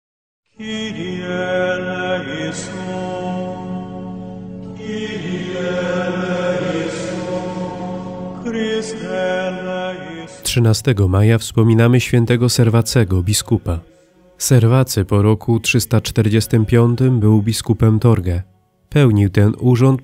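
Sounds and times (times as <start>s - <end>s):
choral chant: 0.6s - 10.6s, 12.5s - 17.5s.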